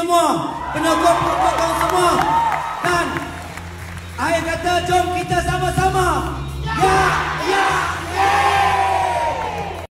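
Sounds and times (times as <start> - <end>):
crowd cheering: 0.4 - 4.6, 6.7 - 9.9.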